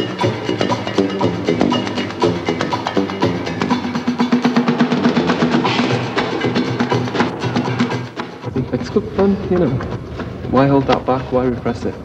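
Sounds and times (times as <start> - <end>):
mallets striking pitched pipes: 0.0 - 10.0
steady percussion beat: 0.0 - 10.9.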